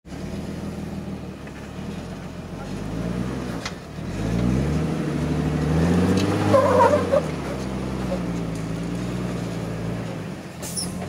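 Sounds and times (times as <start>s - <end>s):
engine revving: 0.1s - 11.0s.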